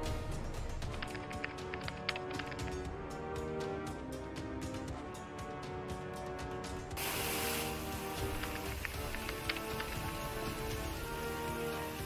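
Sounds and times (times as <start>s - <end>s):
background music: 0.0s - 12.0s
raindrop ticks: 0.5s - 3.0s, 8.0s - 11.6s
heavy rain hissing on street: 7.0s - 12.0s.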